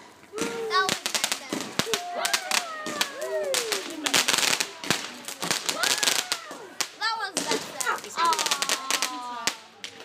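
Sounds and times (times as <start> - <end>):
fireworks crackling pops: 0.0 - 10.0.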